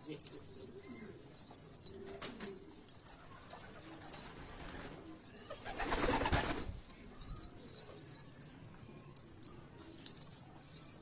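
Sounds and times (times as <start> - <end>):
pigeons cooing: 0.2 - 6.7.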